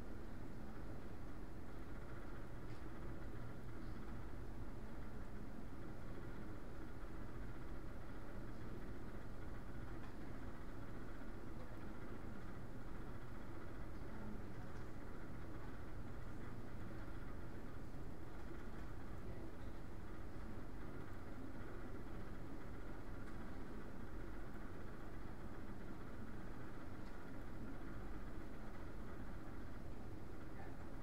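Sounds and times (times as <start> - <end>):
room hum and hiss: 0.0 - 31.0.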